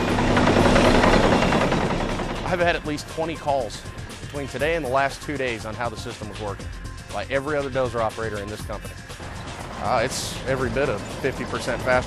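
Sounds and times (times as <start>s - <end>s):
dozer engine and tracks: 0.0s - 6.4s, 7.6s - 12.0s.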